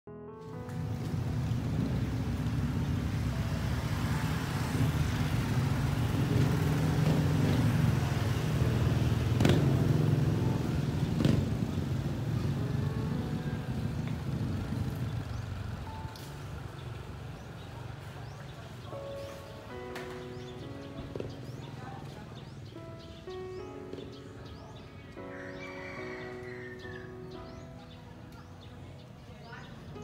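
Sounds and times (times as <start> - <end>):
motorcycle engine rumbling: 0.6 - 18.8.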